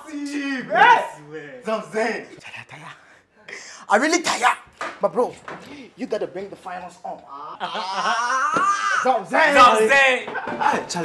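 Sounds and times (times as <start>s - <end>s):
man laughing and exclaiming: 7.3s - 10.9s.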